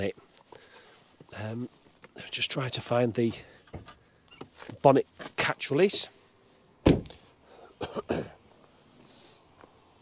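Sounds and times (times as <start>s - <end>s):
car bonnet popping up thunk: 6.8s - 7.2s.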